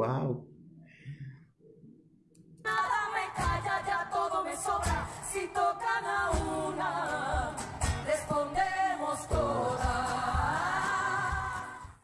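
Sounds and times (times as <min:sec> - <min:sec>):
women's choir singing: 0:02.7 - 0:12.0.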